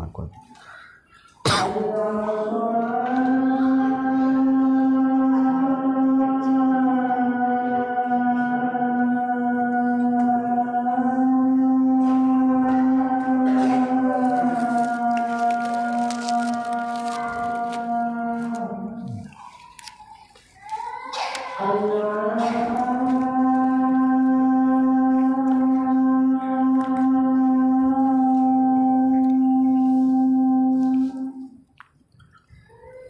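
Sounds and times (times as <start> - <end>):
call to prayer chanting: 0.0 - 31.6.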